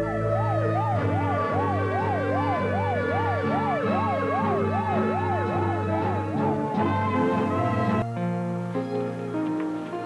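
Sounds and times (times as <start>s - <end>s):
siren yelping: 0.0s - 8.0s
background music: 0.0s - 10.0s.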